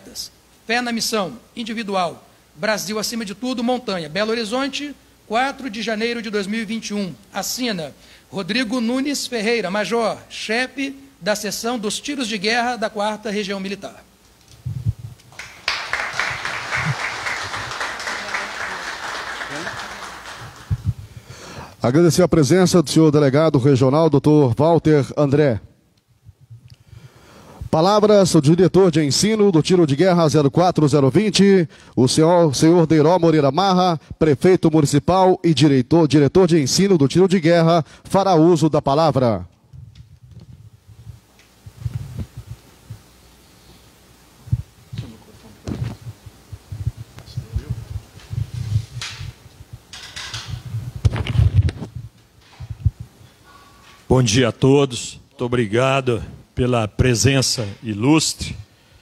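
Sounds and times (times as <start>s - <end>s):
faint steady hum: 0.0s - 59.0s
microphone handling thumps: 14.6s - 15.2s, 20.7s - 21.1s, 39.8s - 43.1s, 44.4s - 53.2s
audience applauding: 15.3s - 21.0s.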